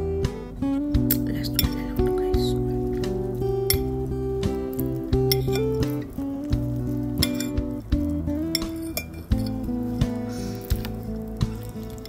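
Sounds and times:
background music with held notes: 0.0 - 12.0
utensils clinking against dish: 8.5 - 9.6.

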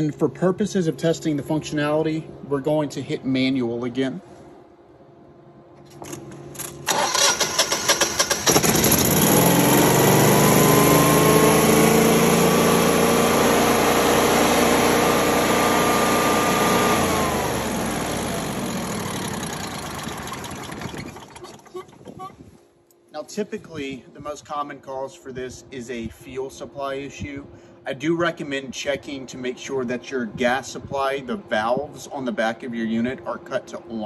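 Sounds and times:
generator engine cranking: 6.0 - 22.3
generator engine running: 6.8 - 22.5.

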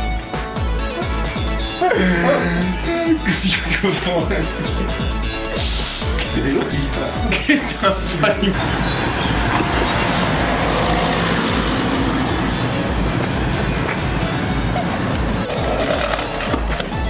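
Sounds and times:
music: 0.0 - 10.7, 12.0 - 17.0
loud steady rushing noise: 8.5 - 16.0.

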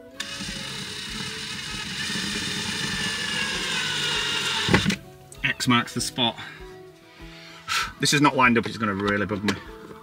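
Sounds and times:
power drill drilling: 0.0 - 5.0.

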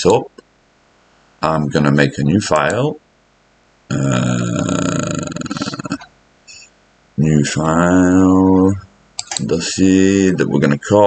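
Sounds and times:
man hesitating uhh: 3.9 - 8.8.

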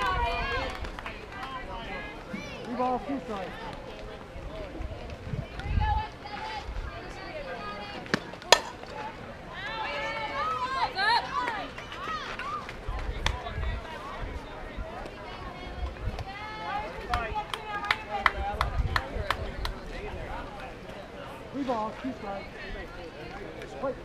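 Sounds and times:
wind rumble on microphone: 4.4 - 7.0, 12.8 - 16.4, 18.4 - 20.3
sharp crack: 8.1 - 8.9.

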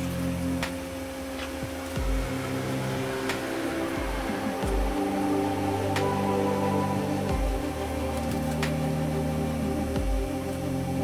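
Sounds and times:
held tones over low bass: 0.0 - 11.0.

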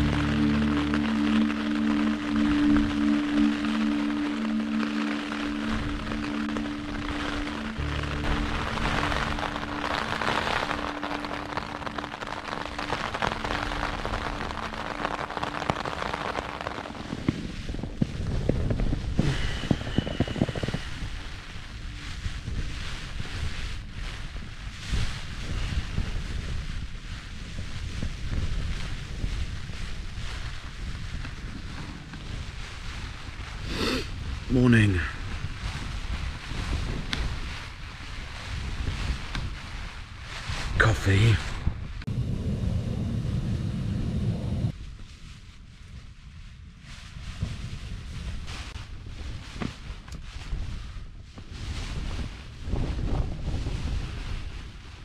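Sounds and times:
soft ambient music: 0.0 - 25.4
rain and wind on tent fabric: 0.0 - 55.0.

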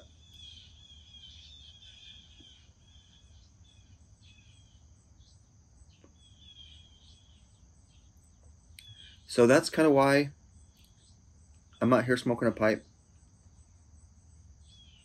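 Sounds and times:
bird singing: 0.0 - 15.0
high insect drone: 0.0 - 15.0.

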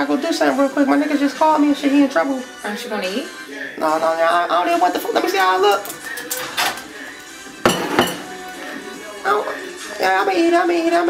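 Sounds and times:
faint background music: 0.0 - 11.0
plate clinking on countertop: 7.6 - 8.5.

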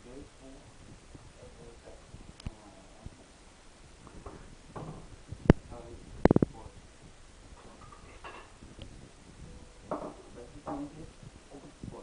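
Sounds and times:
items knocking in cupboard: 9.9 - 10.9.

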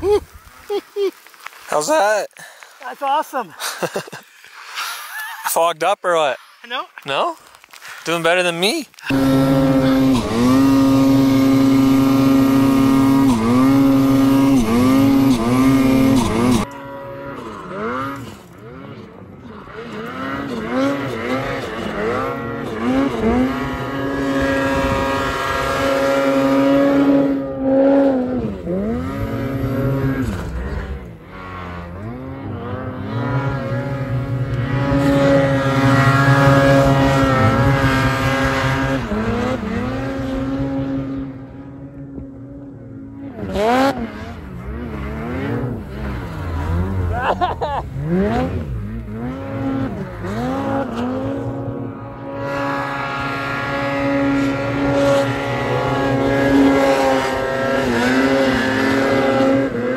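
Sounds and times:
snowmobile engine revving: 8.0 - 59.9.

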